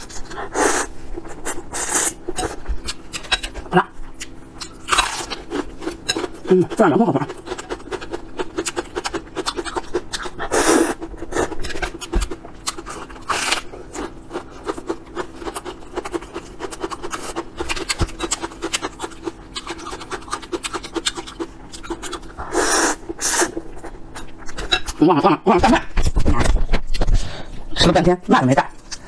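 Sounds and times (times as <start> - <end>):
chewing noodles with mouth clicks: 7.3 - 24.5.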